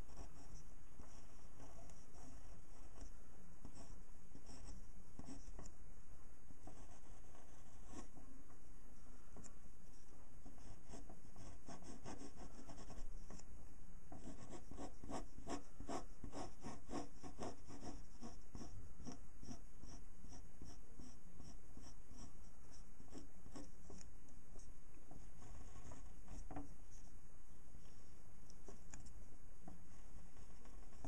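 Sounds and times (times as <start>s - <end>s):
pen scratching on paper: 0.0s - 5.7s, 6.6s - 8.2s, 9.9s - 13.4s, 14.1s - 27.1s, 30.3s - 31.0s.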